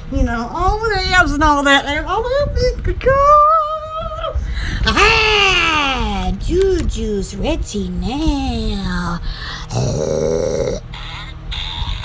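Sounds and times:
woman's low rasping vocal noise: 9.0 - 12.0
breathy sound: 9.2 - 12.0.

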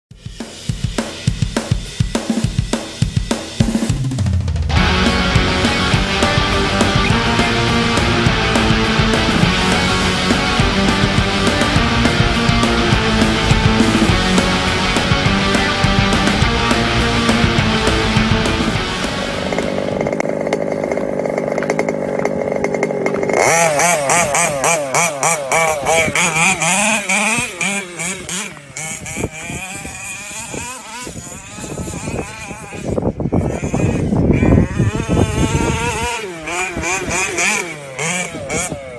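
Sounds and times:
small two-stroke engine buzzing: 0.1 - 3.9, 4.7 - 38.9
rock drum beat: 0.1 - 21.0.

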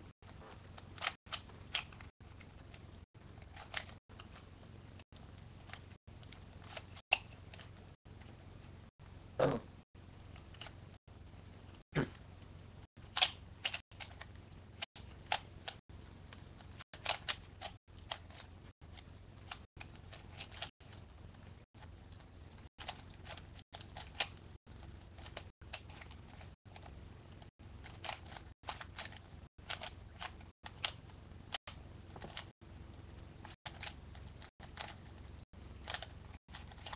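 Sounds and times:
steady low hum: 0.0 - 36.9
plastic puzzle cube clicking: 13.2 - 14.3, 17.0 - 18.5, 27.8 - 31.0.

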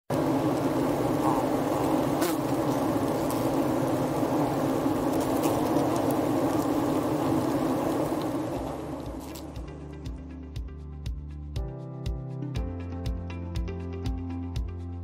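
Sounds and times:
bees buzzing: 0.1 - 9.8.

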